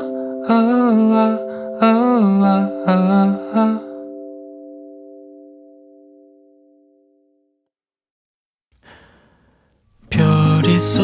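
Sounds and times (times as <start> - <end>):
faint breathy sigh: 8.8 - 9.8.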